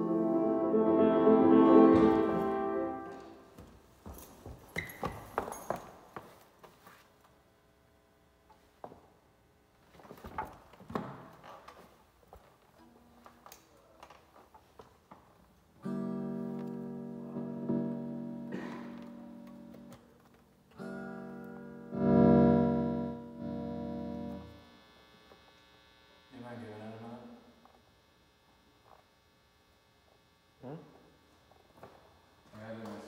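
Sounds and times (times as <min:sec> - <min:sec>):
guitar chords strummed: 0:00.0 - 0:03.4, 0:15.8 - 0:20.1, 0:20.7 - 0:24.7.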